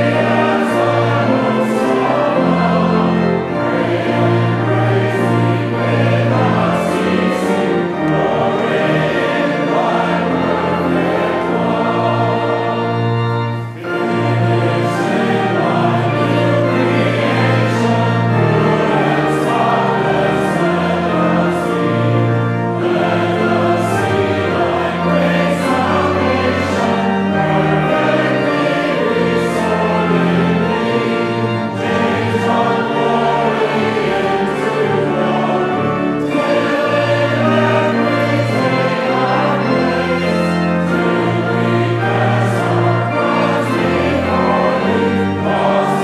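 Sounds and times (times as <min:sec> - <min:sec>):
congregation and choir singing hymn: 0:00.0 - 0:46.0
pipe organ low notes: 0:00.0 - 0:46.0.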